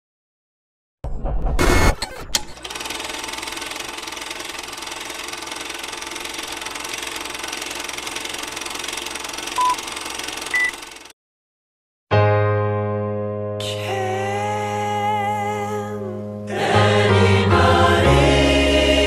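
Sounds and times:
film projector rattle: 2.6s - 11.1s
short beeps: 9.6s - 9.8s, 10.5s - 10.8s.

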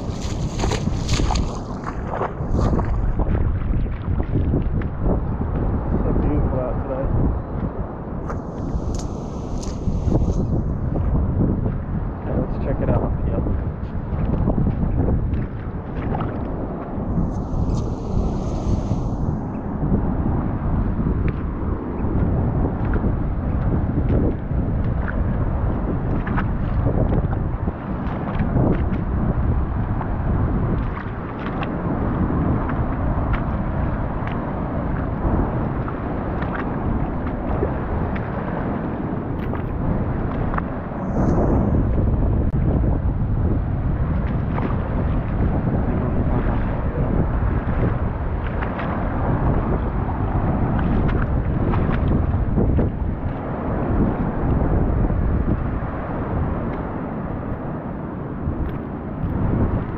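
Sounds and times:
surf washing over rocks: 0.0s - 3.6s, 8.3s - 11.0s, 15.6s - 21.6s
wind buffeting microphone: 0.0s - 59.9s.

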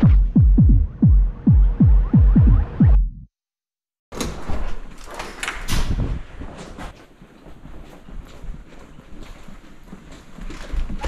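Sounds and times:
electronic music: 0.0s - 3.3s.

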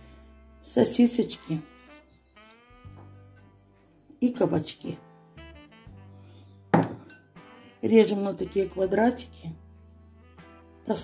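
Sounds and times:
background music: 0.0s - 11.0s
glass bowl clinking: 6.7s - 7.4s.

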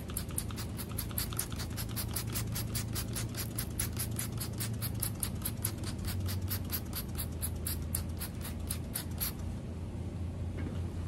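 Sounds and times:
spray bottle squirting: 0.0s - 9.4s.

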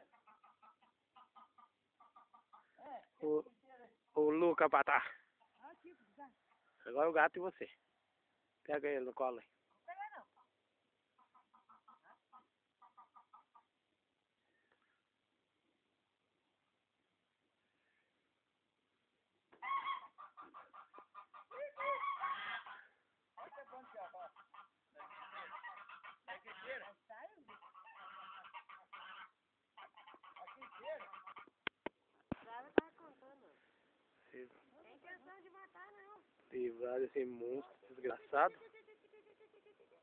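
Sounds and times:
faint fowl calls: 0.0s - 3.4s, 9.7s - 15.2s, 19.5s - 32.0s
geese honking: 19.6s - 31.6s.

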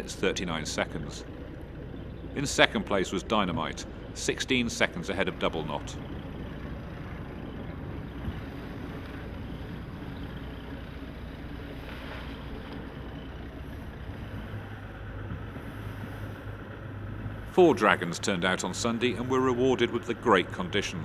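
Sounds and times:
choppy water around boat: 0.0s - 21.0s
low steady hum: 0.0s - 21.0s.

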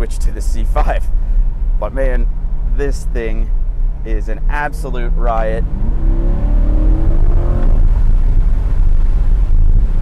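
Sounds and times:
car engine accelerating: 2.2s - 10.0s.

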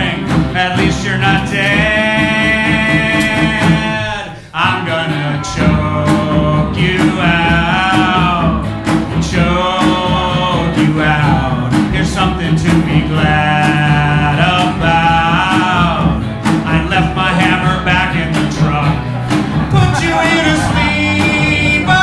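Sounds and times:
electric guitar: 0.0s - 22.0s
man singing rock song: 0.0s - 22.0s.

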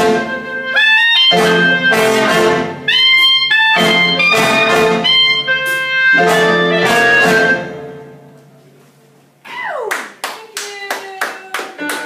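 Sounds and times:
hand claps: 9.9s - 12.0s.

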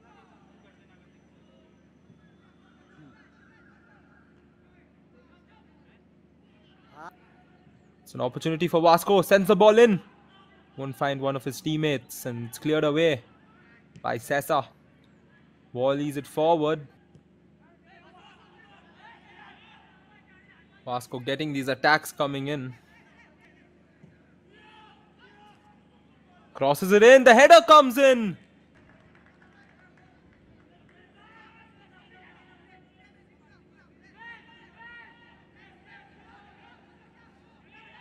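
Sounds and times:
low stadium background noise: 0.0s - 38.0s
distant players calling out: 26.7s - 28.4s.

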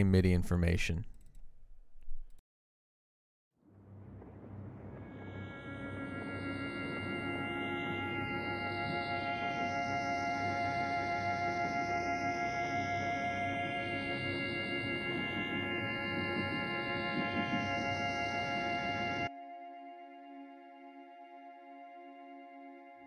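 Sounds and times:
ambient music with held notes: 3.6s - 23.0s.

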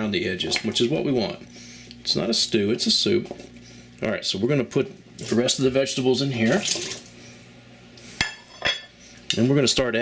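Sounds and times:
ceramic plate clinking: 8.2s - 8.9s.

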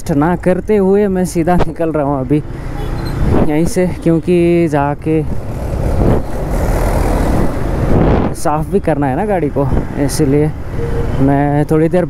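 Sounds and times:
wind and road noise: 0.0s - 12.0s.

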